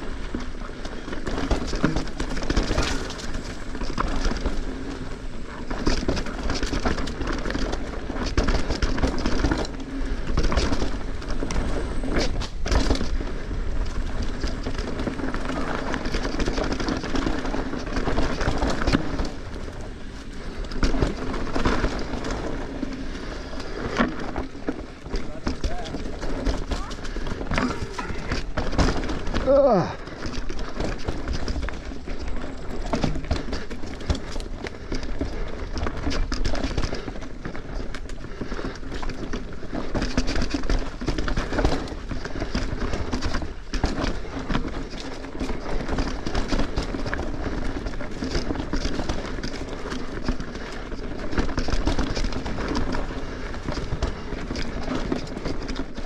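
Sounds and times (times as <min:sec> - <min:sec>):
bike rattling: 0:00.0 - 0:56.0
bike tyres knocking on rocks: 0:01.0 - 0:04.9, 0:23.7 - 0:38.0.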